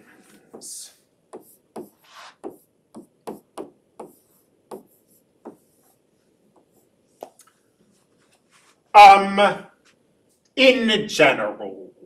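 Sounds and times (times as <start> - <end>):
stylus tapping on screen: 0.5 - 5.7.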